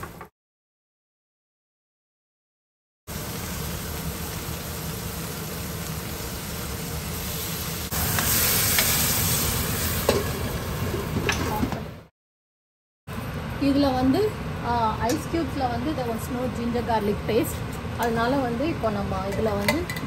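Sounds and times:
spices sizzling in hot oil: 3.1s - 11.2s.

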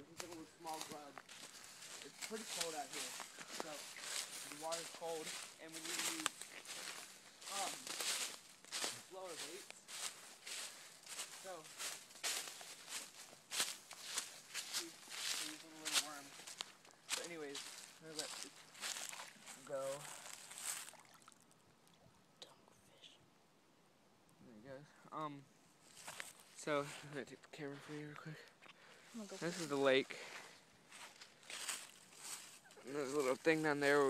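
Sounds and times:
person speaking: 0.0s - 20.3s, 26.6s - 28.5s, 29.1s - 30.4s, 32.8s - 34.0s
footsteps crunching through dry leaves: 0.1s - 21.2s, 25.8s - 27.1s, 29.2s - 34.0s.

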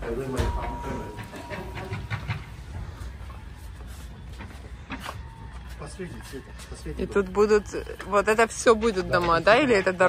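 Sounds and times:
knocks and footsteps: 0.0s - 10.0s.

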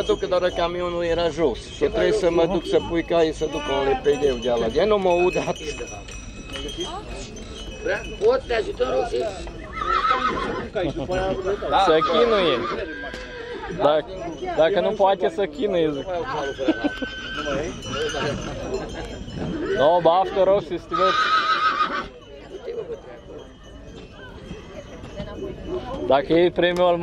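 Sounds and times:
horse whinnying: 9.7s - 10.7s, 11.7s - 13.4s, 16.7s - 17.7s, 20.9s - 22.1s.

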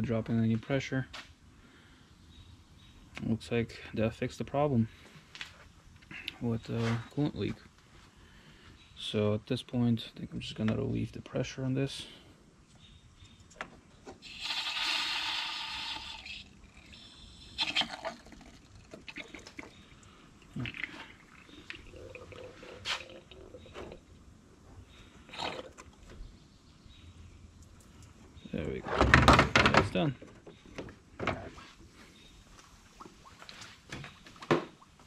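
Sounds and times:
pressure release hiss: 14.2s - 17.6s.

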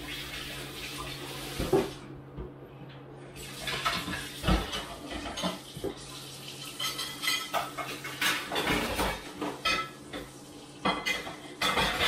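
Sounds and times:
dishes and cutlery clattering: 3.6s - 5.6s, 6.7s - 12.0s.

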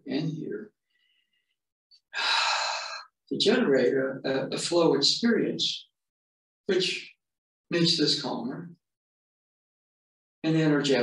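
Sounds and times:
person breathing loudly: 2.1s - 3.1s.

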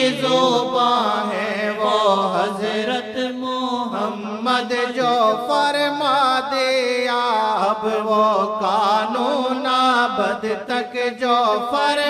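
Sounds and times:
person singing devotional song: 0.0s - 12.0s.

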